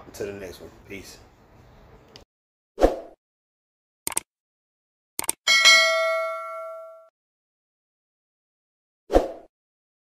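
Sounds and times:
double mouse click: 4.1 - 4.3
bell-like notification ding: 5.5 - 7.1.

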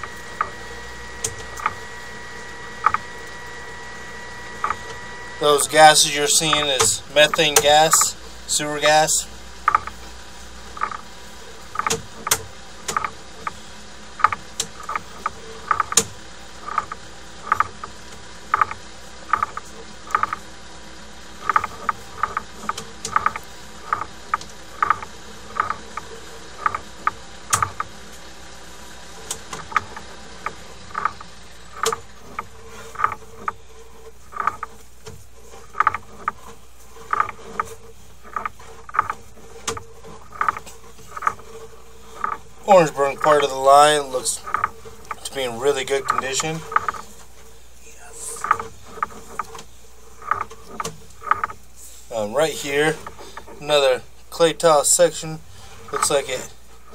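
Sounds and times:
cable reel clicking: 0.0 - 20.5, 21.3 - 28.2, 29.1 - 47.5, 48.2 - 56.9
steady low hum: 0.0 - 56.9.

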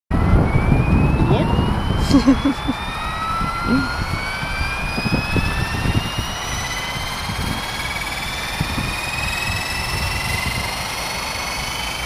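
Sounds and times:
rc helicopter motor whine: 0.2 - 12.0.

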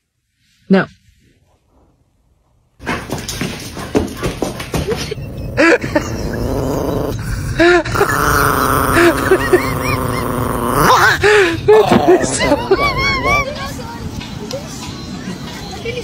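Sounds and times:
rustling noise: 0.0 - 2.2
dog moaning calls: 5.1 - 11.2.

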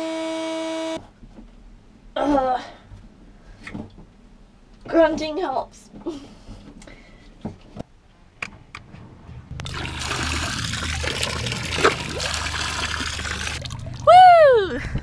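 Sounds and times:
low steady hum: 1.0 - 15.0
water jetting and splashing: 9.6 - 14.4.

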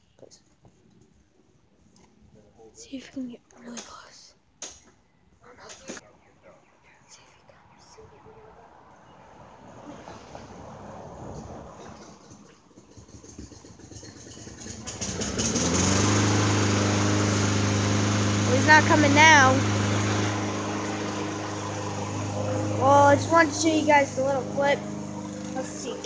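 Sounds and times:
engine starting and running: 9.5 - 26.0.

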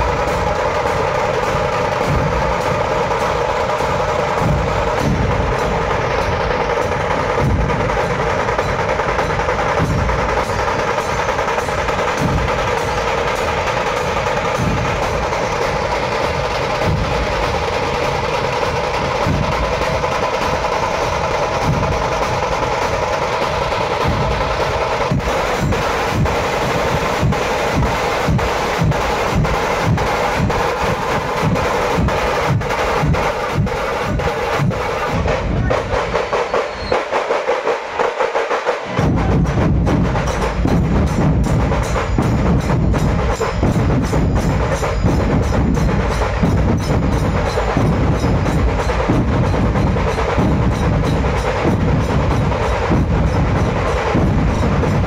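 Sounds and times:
barrel drums beating: 0.0 - 55.0
fast drum rolls: 0.0 - 55.0.

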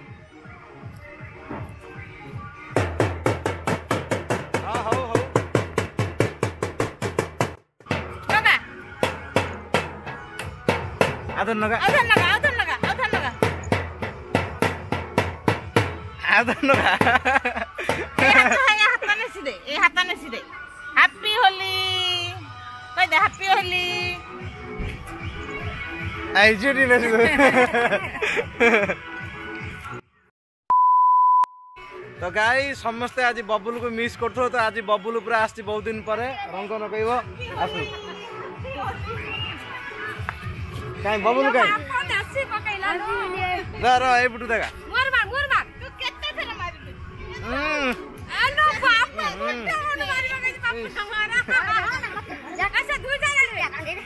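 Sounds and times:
test tone beep: 30.7 - 31.8.

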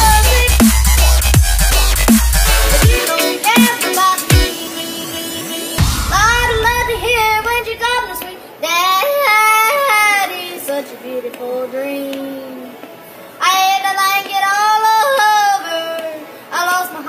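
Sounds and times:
deep bass: 0.0 - 3.0, 5.8 - 8.2.

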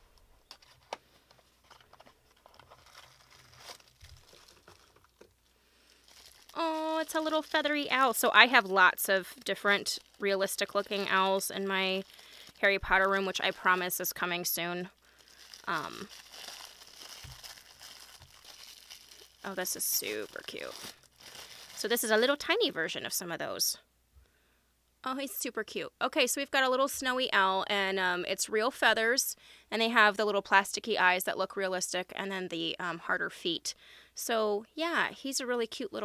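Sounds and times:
cellophane crinkling: 0.4 - 22.6.

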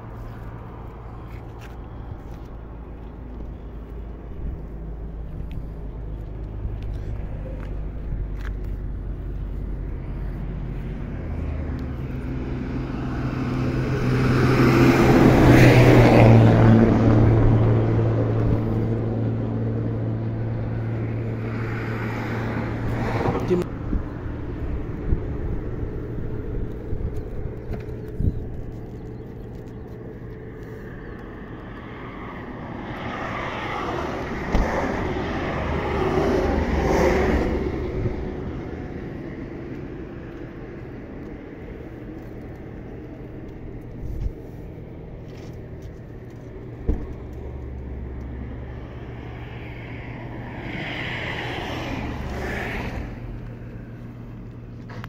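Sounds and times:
low engine hum: 0.0 - 55.0
motorway traffic passing: 0.0 - 55.0.

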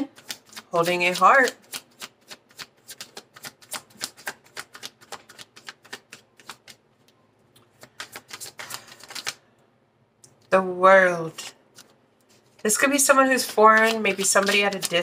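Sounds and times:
cards being shuffled: 0.1 - 9.4, 11.7 - 15.0.

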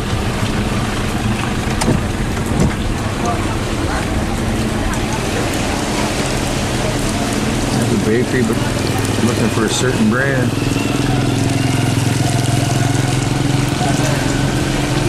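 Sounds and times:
car engine hum: 0.0 - 15.0
rain on car roof: 0.0 - 15.0.

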